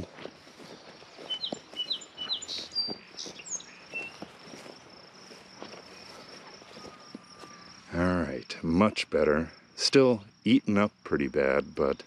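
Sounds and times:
footsteps on grass: 0.0s - 7.8s
high insect trill: 0.0s - 12.0s
bird chirps: 0.7s - 4.8s, 5.8s - 7.9s.

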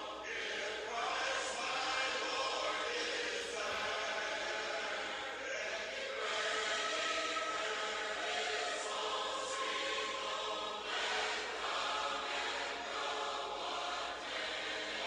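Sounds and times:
choir singing a hymn: 0.0s - 15.0s.

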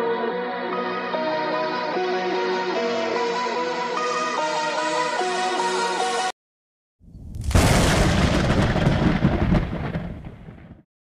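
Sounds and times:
thunder-like rumbling boom: 7.0s - 10.8s.

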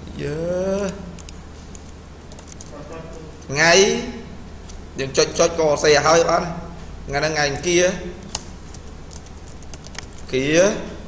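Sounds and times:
computer keyboard typing: 0.6s - 3.5s, 8.2s - 10.4s.

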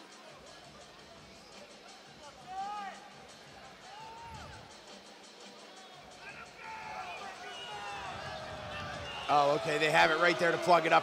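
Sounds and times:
spectators shouting: 6.2s - 11.0s.

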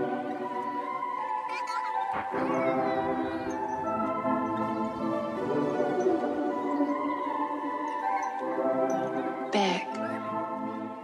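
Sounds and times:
upbeat christmas instrumental music: 0.0s - 11.0s.

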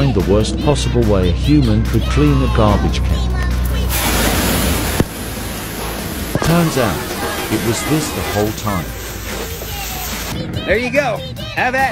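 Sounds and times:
pressure washer spraying: 3.8s - 10.4s.

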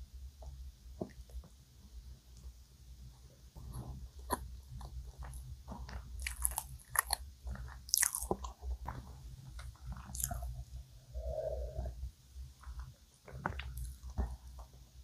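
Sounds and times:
close-up chewing: 3.7s - 10.8s, 12.6s - 14.8s.

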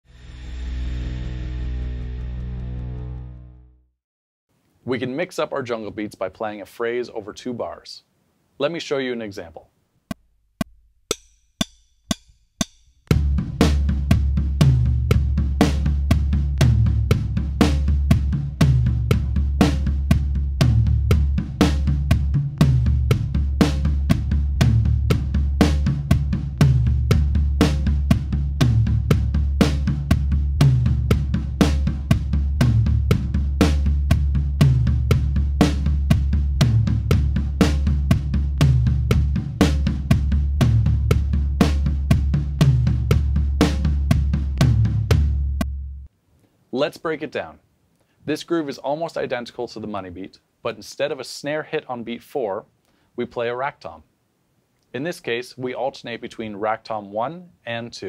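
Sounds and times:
drum kit groove: 10.1s - 46.1s
rack tom hits: 10.6s - 45.9s.

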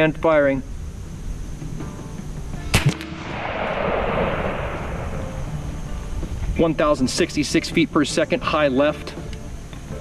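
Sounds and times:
rushing noise: 2.7s - 6.8s
air rifle shot cracks: 2.8s - 5.8s.

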